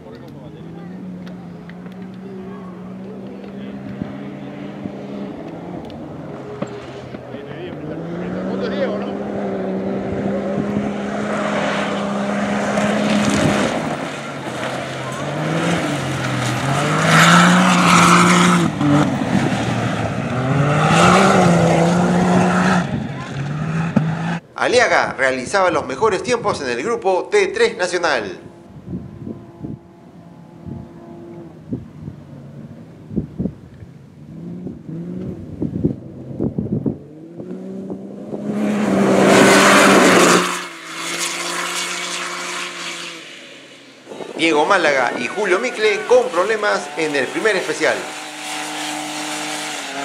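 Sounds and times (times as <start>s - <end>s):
engine revving through gears: 0.5s - 24.4s, 34.3s - 50.0s
tyres rushing on loose dirt: 11.3s - 21.2s.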